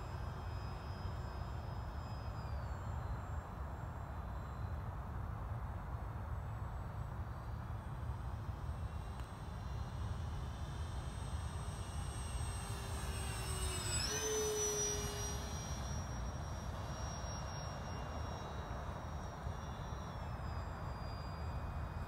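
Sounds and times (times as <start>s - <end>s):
model plane motors whining: 0.0s - 5.0s, 7.3s - 22.0s.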